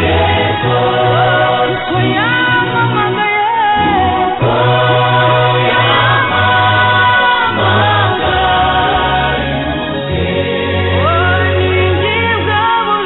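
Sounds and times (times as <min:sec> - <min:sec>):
gospel choir singing: 0:00.0 - 0:13.0
stepping bass accompaniment: 0:03.8 - 0:12.6.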